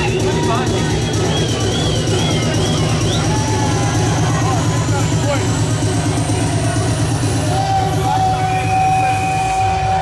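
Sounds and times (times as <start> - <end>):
bass-heavy dance music: 0.0 - 10.0
crowd voices: 0.0 - 10.0.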